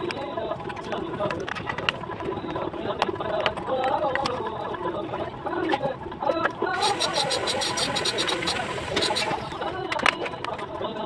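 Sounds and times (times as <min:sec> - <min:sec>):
fast high rattle: 0:06.8 - 0:09.8.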